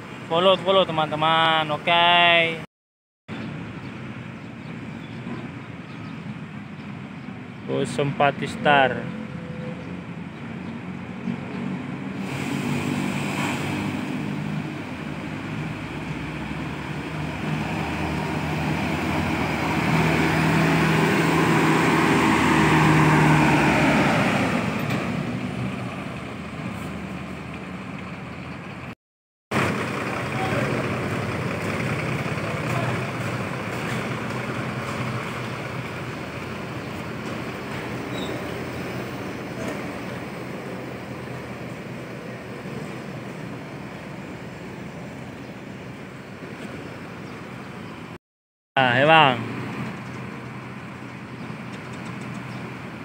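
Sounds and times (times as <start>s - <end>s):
bus diesel engine: 3.3s - 48.2s, 48.8s - 53.0s.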